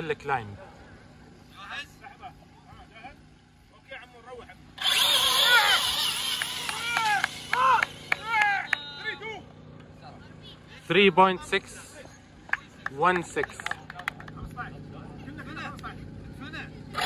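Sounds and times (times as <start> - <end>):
voices calling out: 4.5 - 14.4
rc car motor and tyres rushing: 4.8 - 8.8.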